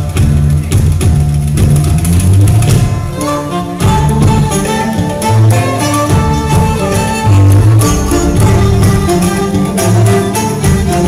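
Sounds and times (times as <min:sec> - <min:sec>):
plucked guitar: 0:02.5 - 0:11.0
heavy bass line: 0:05.3 - 0:11.0.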